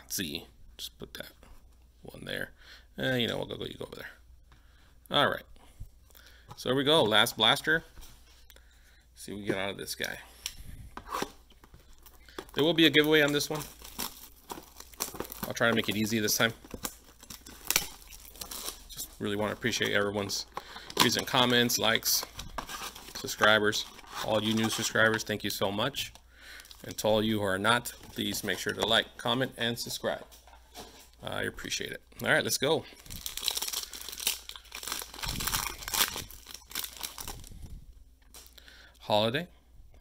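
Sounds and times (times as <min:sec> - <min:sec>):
plastic wrap crinkling: 0:11.1 - 0:29.0, 0:33.0 - 0:38.6
foil wrapper tearing and crinkling: 0:12.6 - 0:18.9, 0:33.0 - 0:37.5.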